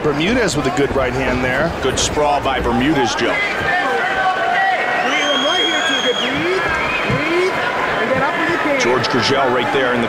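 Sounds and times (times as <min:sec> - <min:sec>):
crowd yelling: 0:00.0 - 0:10.0
high whistle: 0:05.0 - 0:07.4.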